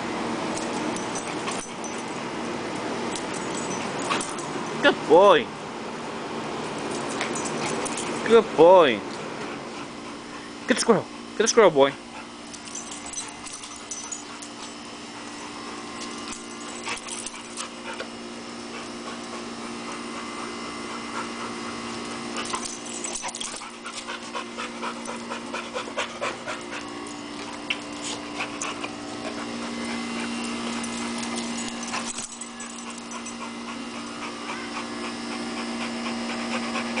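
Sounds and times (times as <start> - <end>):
low hum: 11.9 - 35.6
dog panting: 11.9 - 37.0.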